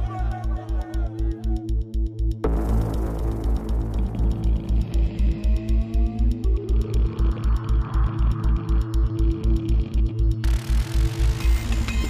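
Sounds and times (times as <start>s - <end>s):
music with steady low beat: 0.0s - 12.0s.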